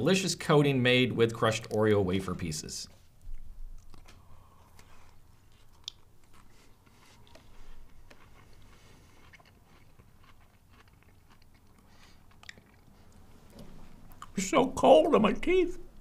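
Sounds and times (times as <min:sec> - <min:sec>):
faint crunching and chewing: 0:01.3 - 0:02.1, 0:02.9 - 0:14.5.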